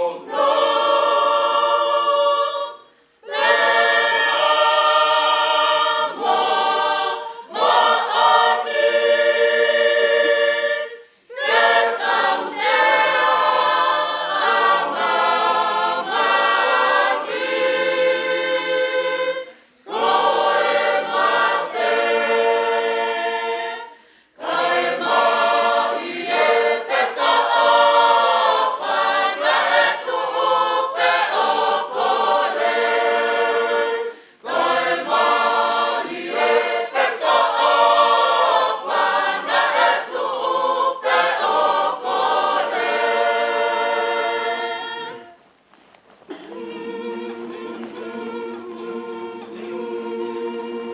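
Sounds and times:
congregation singing a hymn: 0.0 - 45.5, 46.3 - 50.9.

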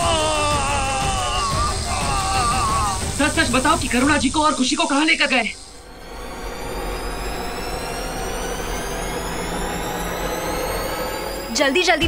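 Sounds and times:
rushing drone: 0.0 - 12.0
rising thin whine: 1.1 - 12.0
low rumble: 1.7 - 12.0.

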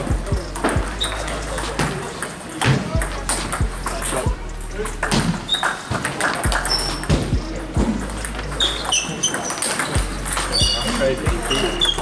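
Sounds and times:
table tennis ball clicking: 4.9 - 7.3, 8.0 - 12.0.

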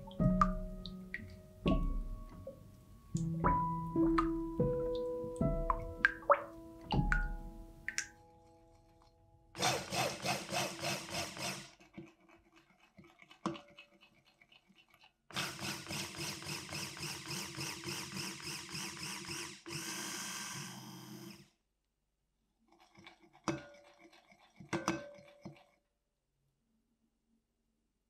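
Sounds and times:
immersion blender running: 9.6 - 11.7, 15.3 - 21.5.

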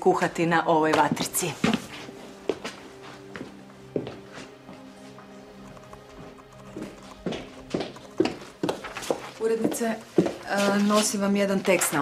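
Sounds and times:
background music with held tones: 0.0 - 12.0
footsteps on hard floor: 0.9 - 12.0.

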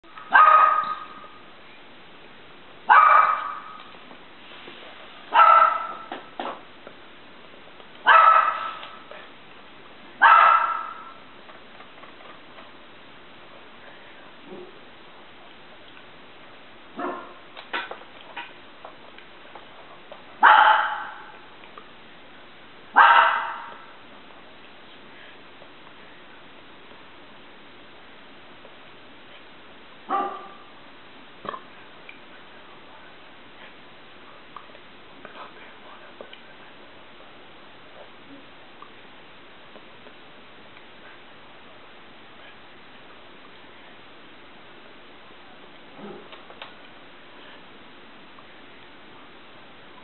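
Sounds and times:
dog barking: 0.2 - 1.4, 2.9 - 3.8, 5.3 - 6.2, 8.0 - 9.0, 10.2 - 11.2, 17.0 - 17.4, 20.4 - 21.4, 22.9 - 23.9, 30.1 - 30.7.

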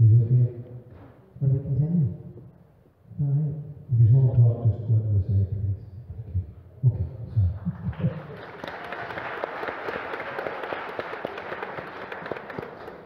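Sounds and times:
audience applauding: 7.6 - 13.0.

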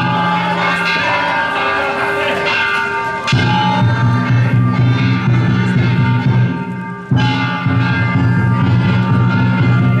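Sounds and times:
metal hand gongs ringing: 0.0 - 10.0.

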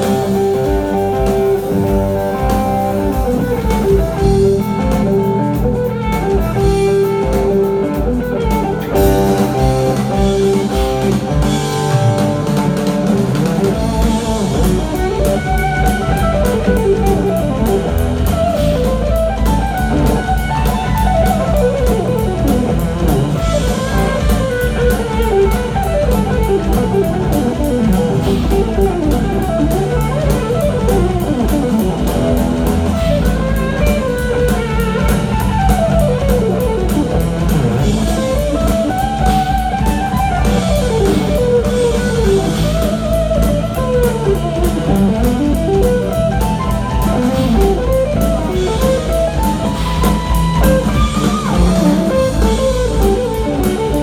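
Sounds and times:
bass guitar: 0.0 - 54.0
electric guitar lead: 0.0 - 54.0
steady drum beat: 0.0 - 54.0.

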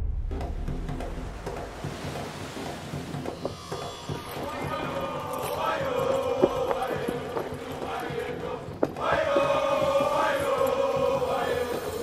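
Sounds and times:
choir chanting held notes: 4.0 - 12.0.

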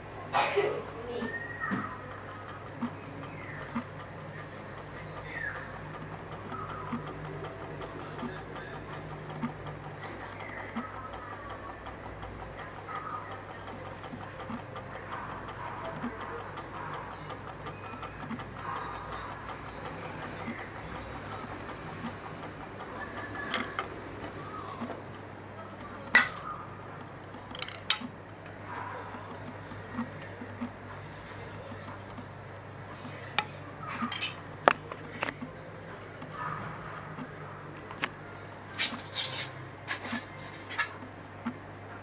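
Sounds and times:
pulse motor ticking: 0.9 - 37.8.

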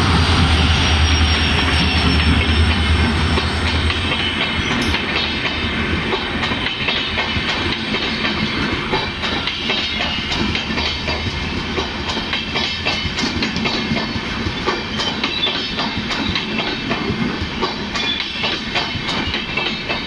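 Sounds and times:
locomotive engine drone: 0.0 - 5.0
train wheels clattering over joints: 0.5 - 20.0.

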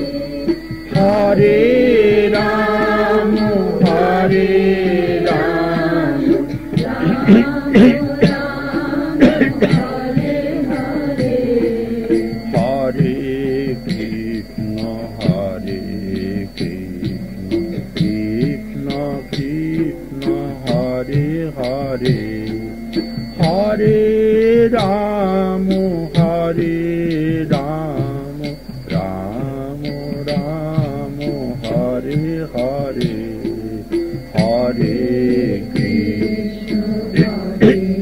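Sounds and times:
person chanting melodically: 0.0 - 22.8, 23.4 - 38.0
sharp percussive strokes: 0.0 - 38.0
sustained drone tones: 0.0 - 38.0.

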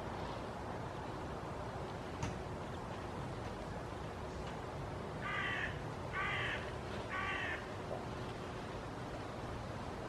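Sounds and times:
crow cawing: 5.2 - 7.7.

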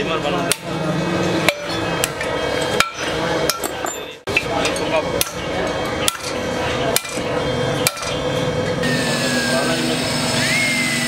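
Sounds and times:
hammer striking chisel on metal: 1.4 - 5.4, 6.0 - 7.2, 7.8 - 8.2.

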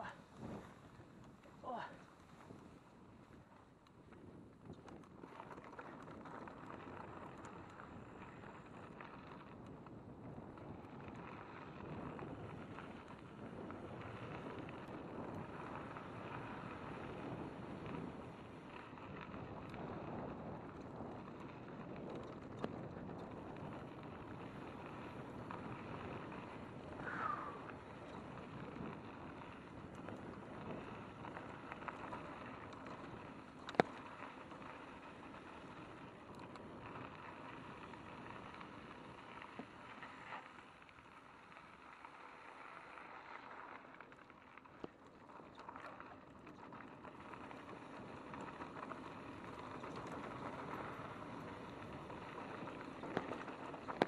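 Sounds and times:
wind on microphone: 0.0 - 2.8, 9.7 - 33.3
bike tyres on loose gravel: 0.0 - 54.0
bike rattling and clicking: 2.2 - 54.0.

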